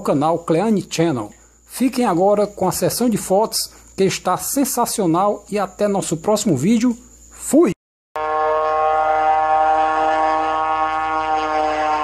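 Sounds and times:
long held musical chord: 8.2s - 12.0s.

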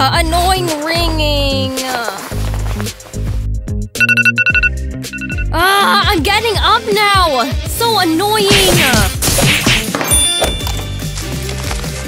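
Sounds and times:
background music with bass: 0.0s - 12.0s
smartphone alarm beeping: 4.0s - 5.6s.

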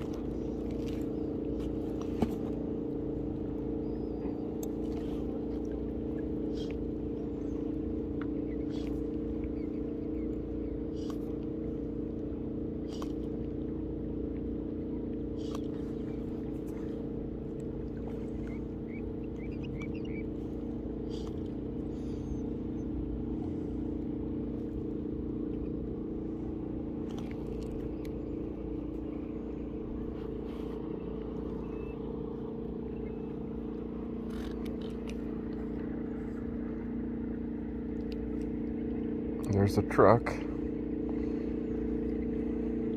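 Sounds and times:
motorboat engine droning: 0.0s - 42.9s
faint clicks: 37.9s - 38.6s.

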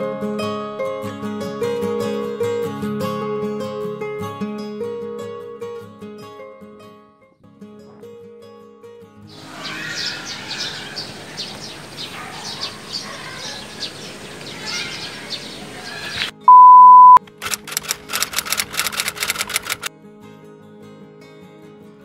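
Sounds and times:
outdoor hiss: 9.3s - 16.3s
short chirps: 16.5s - 17.2s
steady beep tone: 16.5s - 17.2s
rapid clicks: 17.2s - 19.9s.

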